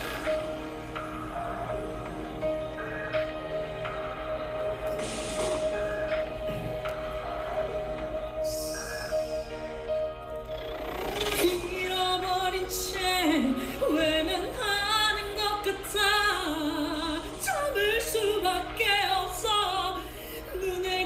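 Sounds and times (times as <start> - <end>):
man singing operatically: 0.0 - 10.0.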